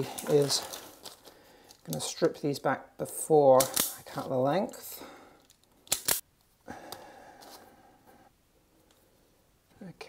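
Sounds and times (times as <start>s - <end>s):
faint breathy noise: 6.6s - 9.5s.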